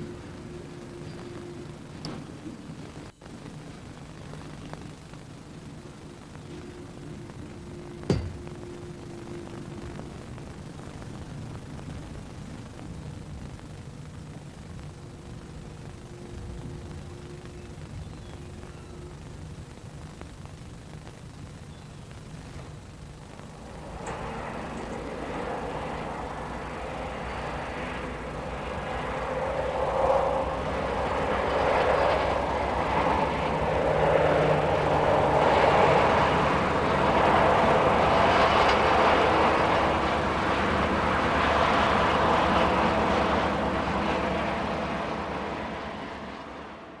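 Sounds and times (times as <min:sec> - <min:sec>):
diesel train engine: 0:00.0 - 0:47.0
train wheels on rails: 0:06.3 - 0:09.8, 0:23.4 - 0:47.0.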